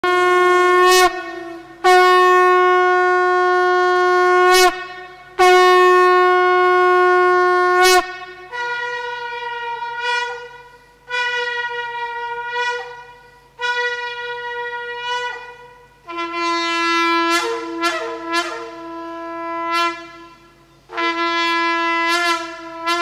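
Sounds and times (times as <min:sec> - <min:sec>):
horns and conch blasts: 0:00.0 - 0:23.0.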